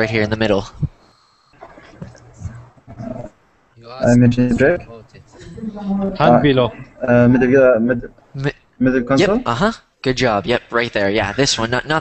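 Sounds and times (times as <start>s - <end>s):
people murmuring on video call: 0.0s - 12.0s.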